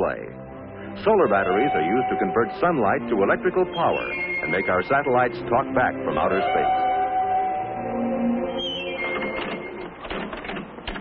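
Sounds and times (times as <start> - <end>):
held musical chord: 0.0 - 10.0.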